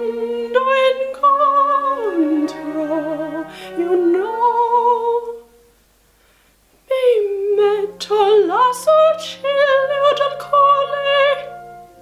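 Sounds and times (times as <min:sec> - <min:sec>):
woman singing: 0:00.0 - 0:05.7, 0:06.9 - 0:11.7.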